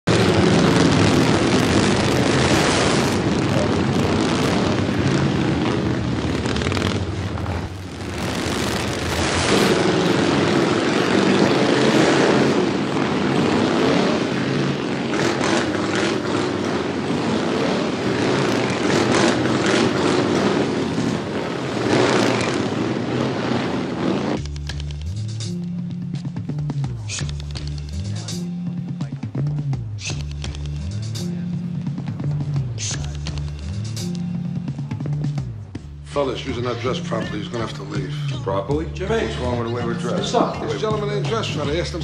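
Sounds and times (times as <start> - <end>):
motorcycle engines riding by: 0.0 - 42.0.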